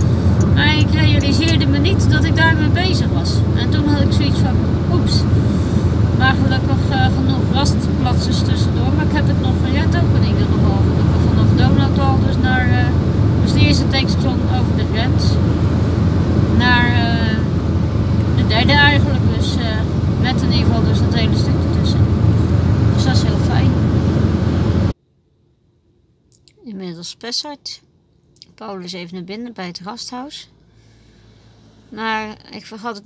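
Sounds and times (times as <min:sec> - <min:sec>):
car cabin road and engine noise: 0:00.0 - 0:25.0.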